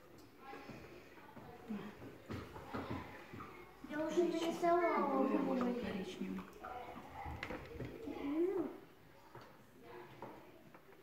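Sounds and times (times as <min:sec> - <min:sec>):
children's voices: 0:01.7 - 0:10.8
child speaking: 0:03.9 - 0:05.7.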